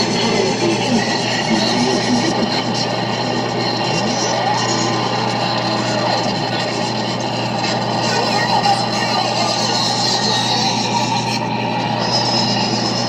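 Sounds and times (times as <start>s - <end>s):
constant low hum: 0.0s - 13.0s.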